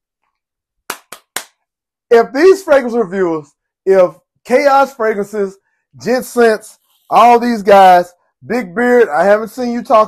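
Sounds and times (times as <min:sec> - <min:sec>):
sharp hand claps: 0:00.8 - 0:01.7.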